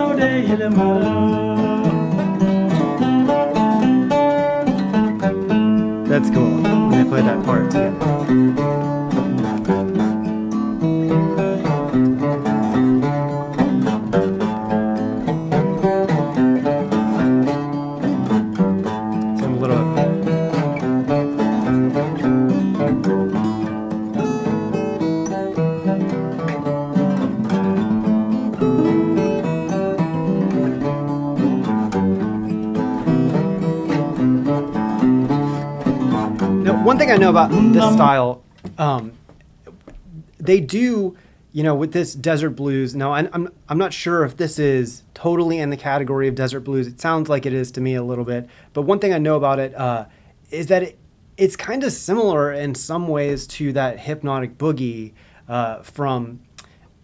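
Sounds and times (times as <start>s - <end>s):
fingerpicked acoustic guitar: 0.0s - 41.6s, 52.3s - 57.0s.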